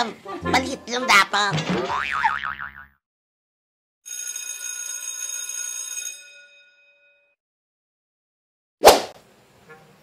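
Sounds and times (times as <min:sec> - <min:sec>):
electric bell ringing: 0:04.1 - 0:07.4.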